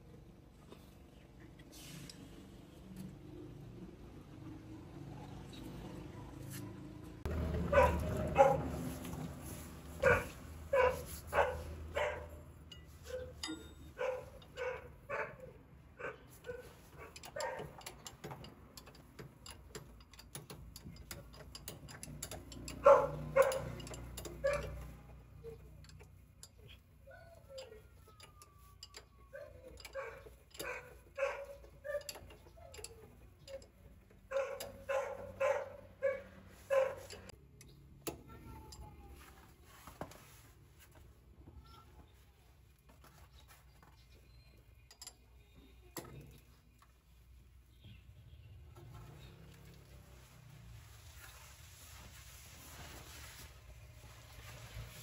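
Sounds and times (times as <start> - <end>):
dog barking: 7.7 - 8.7, 10.0 - 12.4, 14.0 - 17.7, 22.8 - 23.8, 24.4 - 24.8, 29.3 - 32.1, 34.3 - 37.2
wrench clinking on metal: 10.0 - 15.3, 16.0 - 38.9, 44.3 - 46.4.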